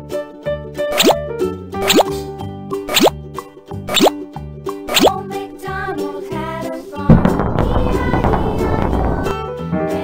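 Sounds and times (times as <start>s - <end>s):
children's background music: 0.0s - 10.0s
cartoon bloop sound effects: 0.9s - 1.2s, 1.8s - 2.1s, 2.9s - 3.2s, 3.9s - 4.2s, 4.9s - 5.2s.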